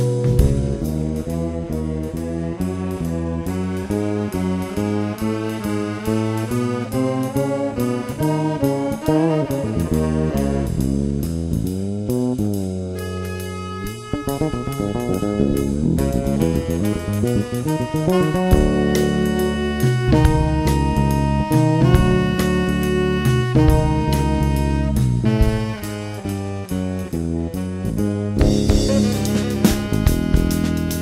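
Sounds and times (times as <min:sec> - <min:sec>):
tenor saxophone melody: 0:00.0 - 0:11.8, 0:12.9 - 0:31.0
bass: 0:00.0 - 0:31.0
drum kit: 0:00.0 - 0:31.0.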